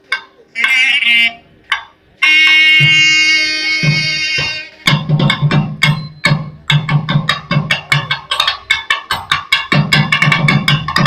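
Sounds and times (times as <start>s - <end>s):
drum strokes: 0.0s - 11.0s
double-reed pipe playing: 0.6s - 1.6s, 2.2s - 4.9s.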